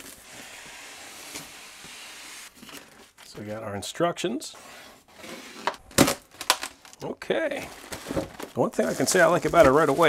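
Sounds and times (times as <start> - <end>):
cardboard flaps and foam rustling: 7.5 - 10.0.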